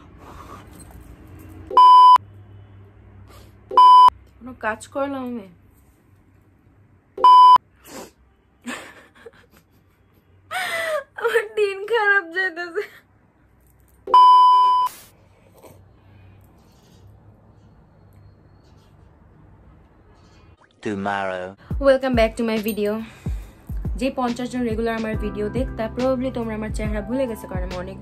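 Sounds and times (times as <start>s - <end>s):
electronic bleep tone: 1.7s - 2.2s, 7.2s - 7.6s.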